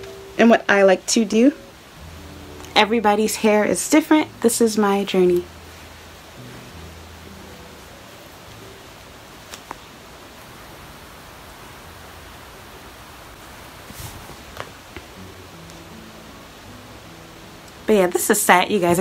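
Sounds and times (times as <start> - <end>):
steady background hiss: 0.0 - 19.0
hair rustling and clicks: 9.4 - 9.9, 13.8 - 15.8.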